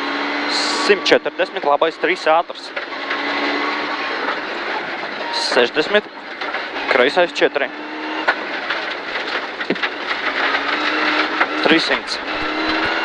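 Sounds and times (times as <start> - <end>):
gravel and road noise: 0.0 - 13.0
rally car engine at speed: 0.0 - 13.0.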